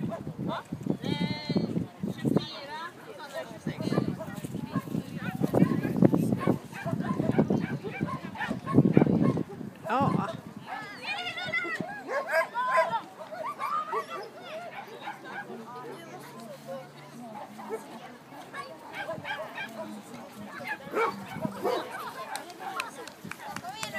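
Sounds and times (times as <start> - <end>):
people's voices: 0.0 - 23.9
people talking: 1.0 - 23.9
dog barking: 6.4 - 9.4, 12.1 - 15.5, 18.6 - 19.9, 20.8 - 22.4.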